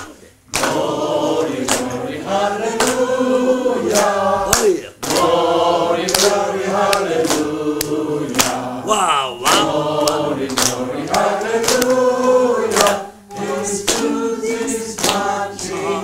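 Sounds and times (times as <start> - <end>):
group singing slow song: 0.4 - 16.0.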